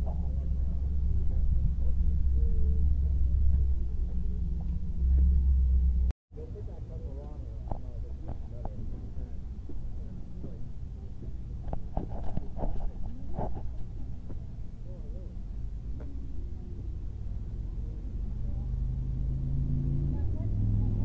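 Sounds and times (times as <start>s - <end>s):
faint voices: 0.0s - 5.5s, 6.4s - 21.0s
car engine idling: 0.0s - 10.6s.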